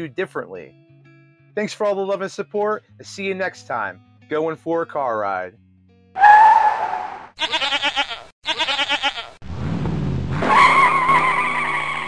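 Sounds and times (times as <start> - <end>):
tyre squeal: 6.2 - 7.3
goat bleating: 7.4 - 9.4.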